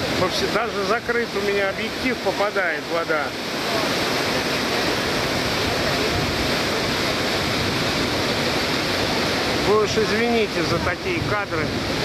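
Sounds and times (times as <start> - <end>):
waterfall roaring: 0.0 - 12.0
wind buffeting microphone: 5.0 - 9.7, 10.4 - 12.0.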